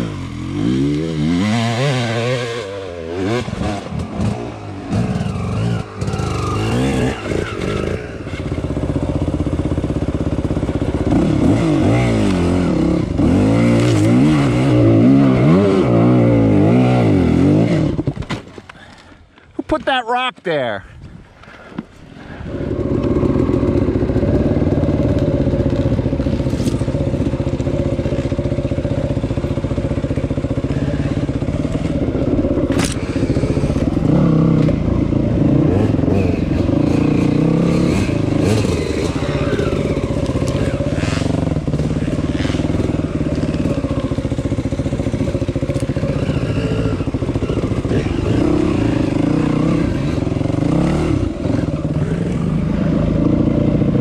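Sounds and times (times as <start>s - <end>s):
dirt bike engine running: 0.0s - 18.2s, 22.2s - 54.0s.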